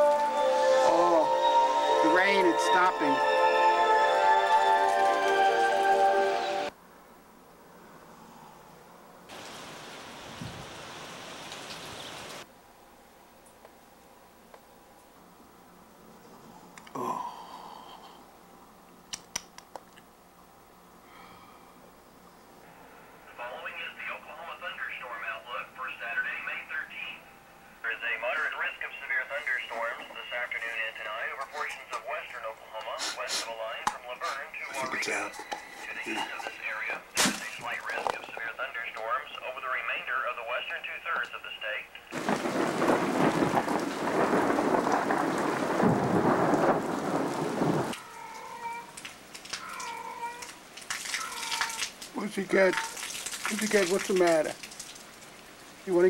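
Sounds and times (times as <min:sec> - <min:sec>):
heavy rain: 0:00.0 - 0:06.8, 0:09.3 - 0:12.5, 0:42.1 - 0:56.0
muffled forecast voice through speaker: 0:00.8 - 0:03.2, 0:23.3 - 0:42.2
thunder: 0:42.2 - 0:48.0.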